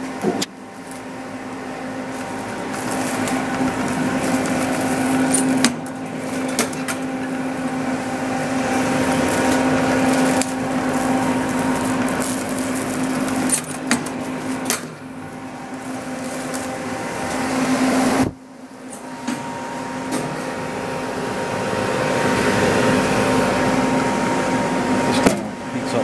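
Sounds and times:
shrink wrap machine humming: 0.0 - 26.0.

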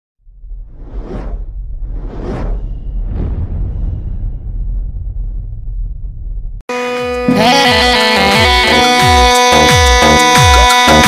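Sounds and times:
whoosh: 0.2 - 6.6
deep rumble: 0.2 - 6.7.

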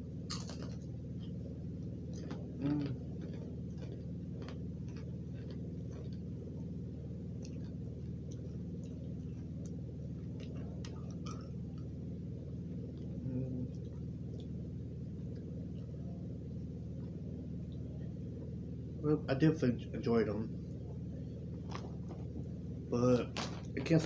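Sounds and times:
steady low hum: 0.0 - 24.0
crunchy snack being chewed: 0.3 - 17.9.

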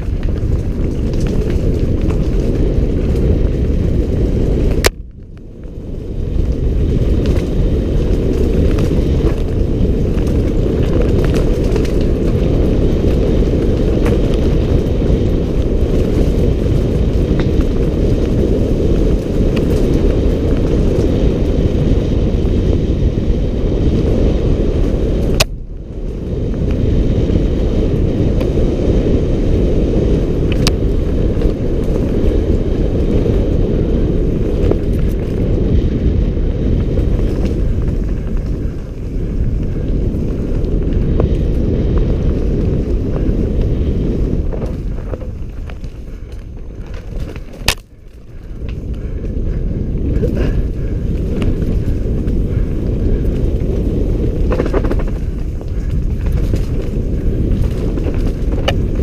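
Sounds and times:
trail vibration rumble: 0.0 - 59.0
wind buffeting camera: 0.0 - 59.0.

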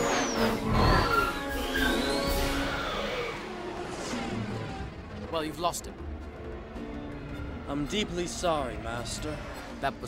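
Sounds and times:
orchestral film music: 0.0 - 10.0.

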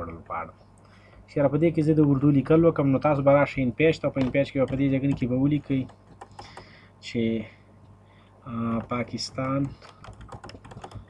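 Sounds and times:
man speaking: 0.0 - 0.6, 8.5 - 9.8
computer keyboard keystrokes: 4.2 - 6.7, 8.8 - 11.0.

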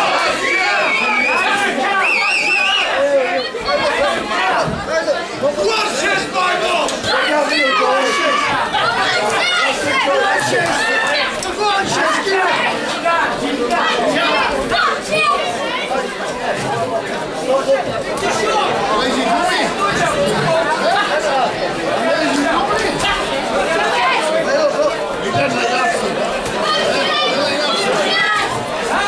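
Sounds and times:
crowd babble and calling out: 0.0 - 29.0.

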